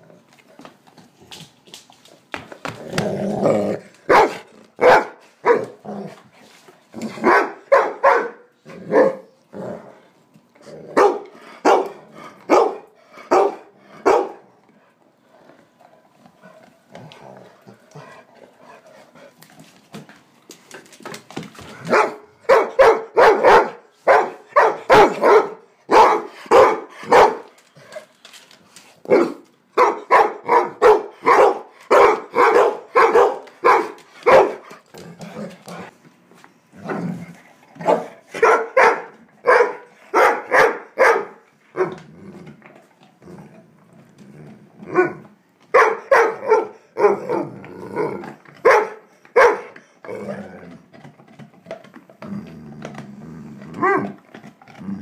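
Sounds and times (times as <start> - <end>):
dog barking: 4.1 - 5.8, 7.2 - 9.4, 11.0 - 14.4, 21.9 - 27.5, 29.1 - 34.6, 37.8 - 41.9, 44.9 - 47.4, 48.6 - 49.8, 53.8 - 54.2.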